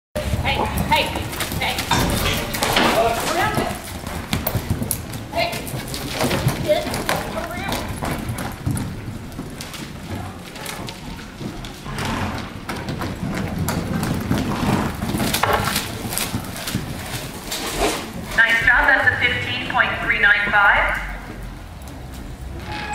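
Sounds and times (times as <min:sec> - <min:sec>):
horse hoofbeats on dirt: 0:00.2 - 0:22.9
indistinct voices: 0:18.4 - 0:21.4.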